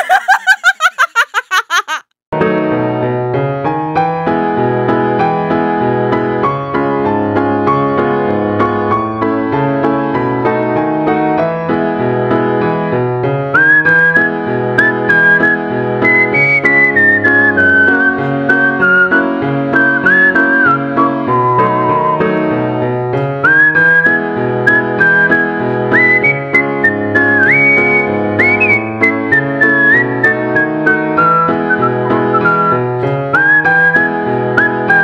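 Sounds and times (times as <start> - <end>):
piano chords: 2.4 - 35.0
whistled melody: 13.5 - 22.7, 23.4 - 35.0.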